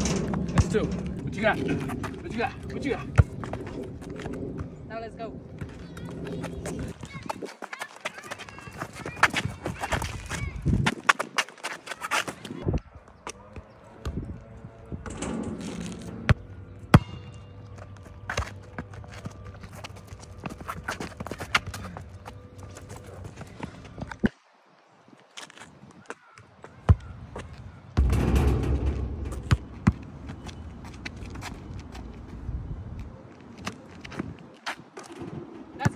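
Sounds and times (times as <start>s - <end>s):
voices: 4.9s - 10.8s
basketball knocks and thuds: 28.0s - 30.6s.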